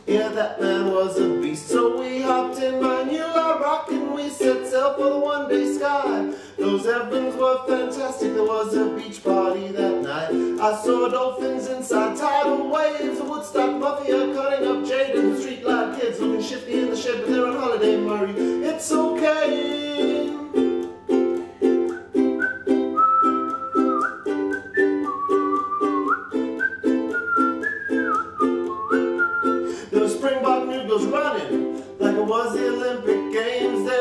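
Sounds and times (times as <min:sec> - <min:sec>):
ukulele strumming: 0:00.0 - 0:34.0
whistled melody: 0:00.0 - 0:34.0.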